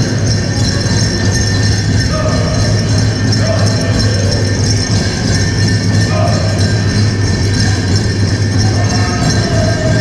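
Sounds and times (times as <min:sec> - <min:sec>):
bells jingling: 0:00.0 - 0:10.0
drum beaten steadily: 0:00.0 - 0:10.0.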